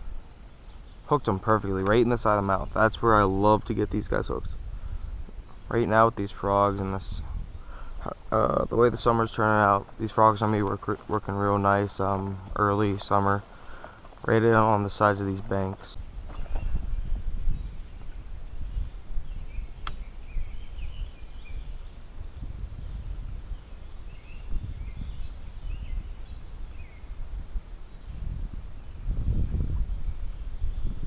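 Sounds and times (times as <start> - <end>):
wind rumble: 0.0 - 31.0
microphone handling: 7.2 - 20.1
faint bird chirps: 16.3 - 22.0, 22.8 - 31.0
sharp click: 19.8 - 20.1.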